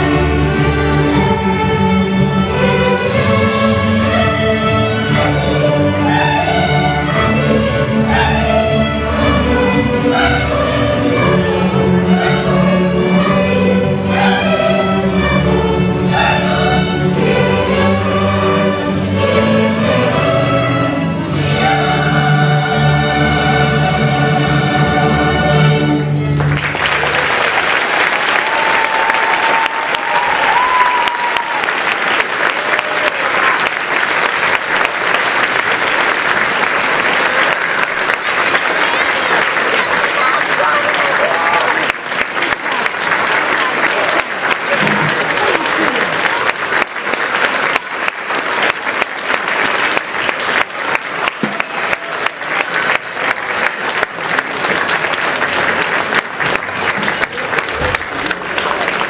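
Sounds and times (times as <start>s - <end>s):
audience applauding: 26.2s - 59.0s.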